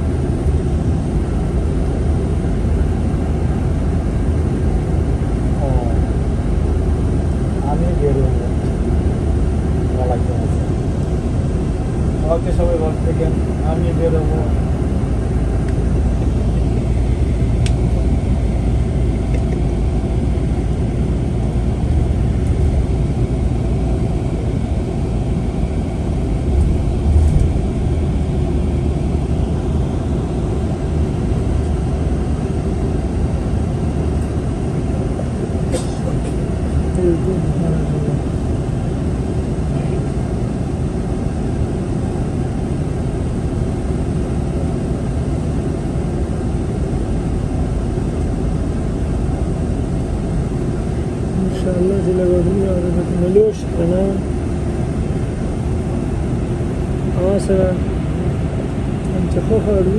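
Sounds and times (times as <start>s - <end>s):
bus engine and tyres rumbling: 0.0s - 59.9s.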